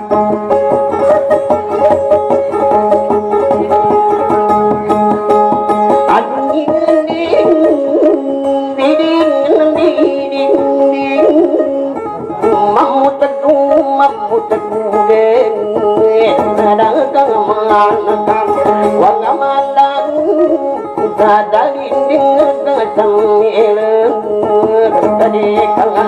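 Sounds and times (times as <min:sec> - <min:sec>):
plucked two-string lute: 0:00.0 - 0:26.0.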